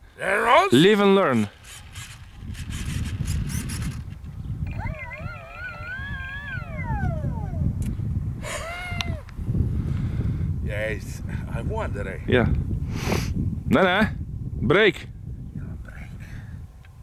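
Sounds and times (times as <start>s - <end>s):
wind rumbling on microphone: 1.2s - 17.0s
wavering howl-like call: 4.7s - 7.8s.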